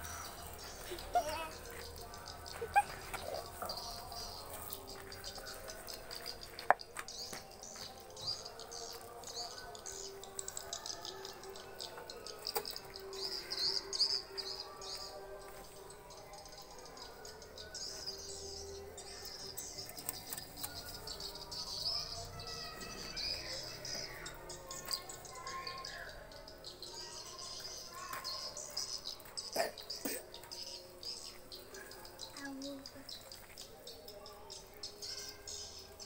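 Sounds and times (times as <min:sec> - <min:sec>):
small birds chirping: 0:00.0 - 0:36.0.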